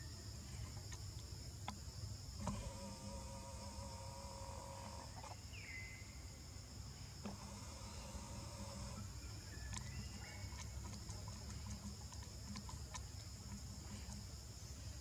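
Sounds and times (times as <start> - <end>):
insects droning: 0.0 - 15.0.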